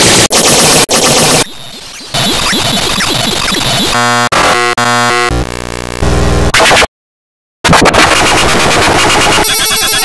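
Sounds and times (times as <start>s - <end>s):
harsh distorted glitch tones: 0.0s - 6.9s, 7.7s - 10.0s.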